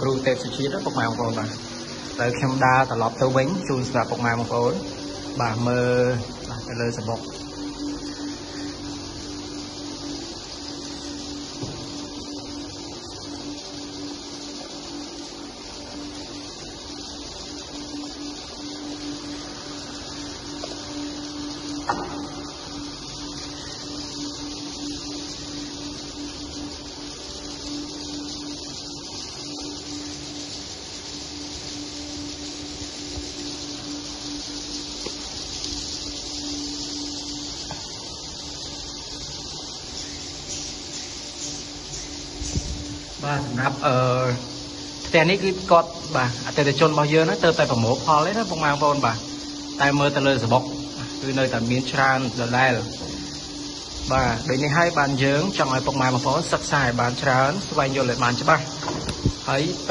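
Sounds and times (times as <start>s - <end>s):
steady low hum: 0.0s - 59.9s
swiftlet calls from speakers: 0.0s - 59.9s.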